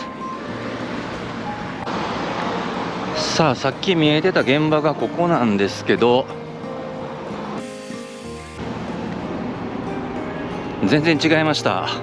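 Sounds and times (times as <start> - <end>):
steady rushing street noise: 0.0 - 12.0.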